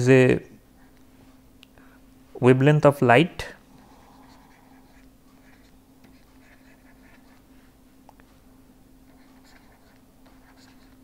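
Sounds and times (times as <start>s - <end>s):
low electrical hum: 0.0s - 11.0s
stylus scratching on pen tablet: 3.8s - 7.5s, 9.0s - 11.0s.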